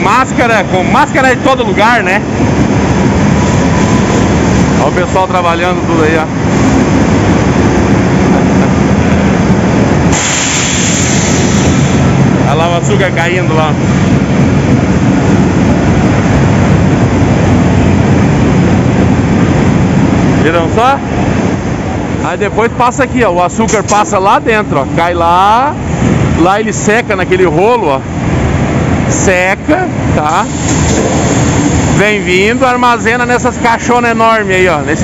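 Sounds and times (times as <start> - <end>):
industrial machinery din: 0.0 - 35.0.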